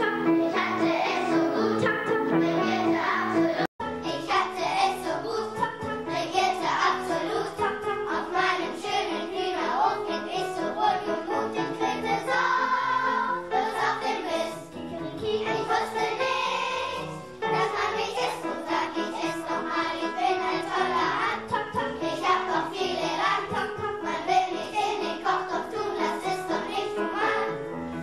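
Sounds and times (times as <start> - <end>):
children's choir singing: 0.0 - 27.9.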